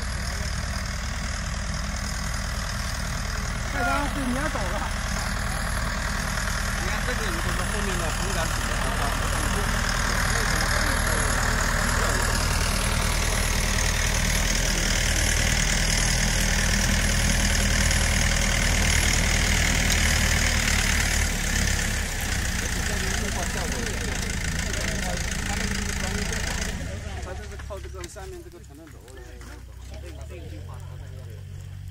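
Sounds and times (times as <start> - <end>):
sprayer engine running: 0.0 - 28.7.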